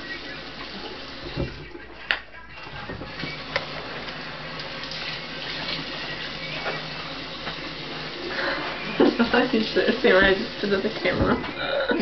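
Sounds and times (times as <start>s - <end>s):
faucet running: 0.0s - 12.0s
water splashing on face: 3.2s - 11.3s.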